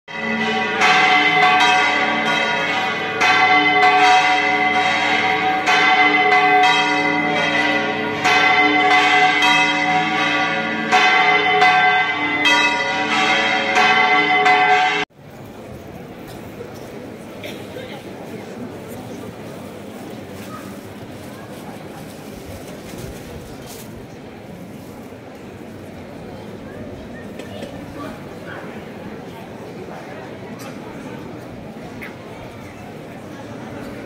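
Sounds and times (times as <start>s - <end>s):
church bells pealing: 0.1s - 15.1s.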